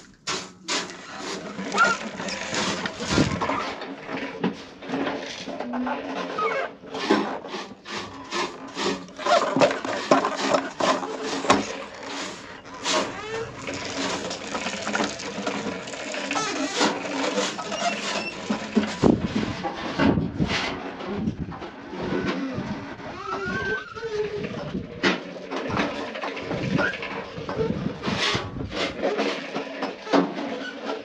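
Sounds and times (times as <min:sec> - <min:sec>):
plastic toy bike rattling: 0:00.0 - 0:06.4, 0:08.0 - 0:20.0.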